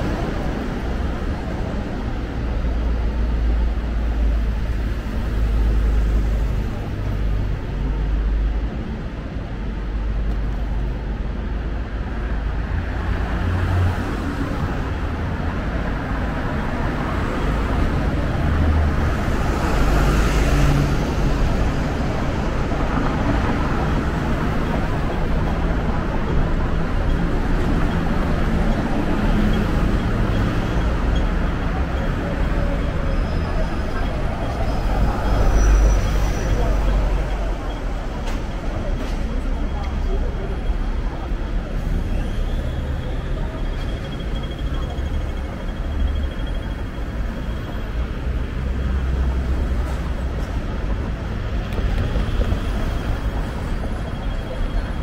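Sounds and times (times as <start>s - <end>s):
bus passing close by: 0.0s - 55.0s
street traffic rumble: 0.0s - 55.0s.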